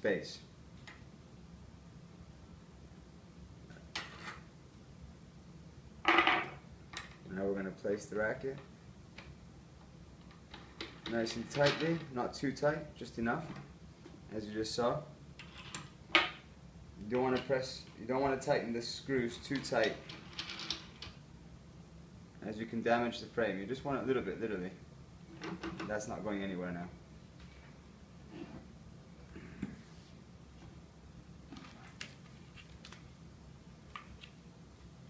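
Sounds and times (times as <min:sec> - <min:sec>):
man talking: 0:07.3 - 0:08.7, 0:11.1 - 0:13.6, 0:14.3 - 0:15.1, 0:17.0 - 0:20.0, 0:22.4 - 0:24.8, 0:25.8 - 0:27.0.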